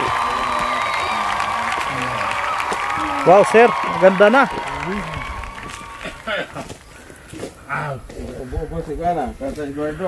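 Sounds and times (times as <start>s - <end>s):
people talking: 0.0s - 2.4s, 3.0s - 5.2s.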